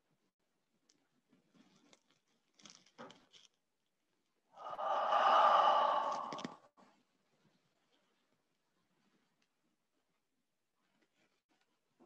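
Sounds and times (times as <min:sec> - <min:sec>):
person exhaling: 0:04.6 - 0:06.7.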